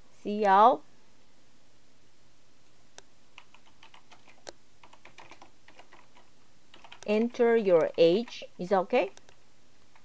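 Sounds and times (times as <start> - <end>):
computer keyboard typing: 3.4 - 10.0.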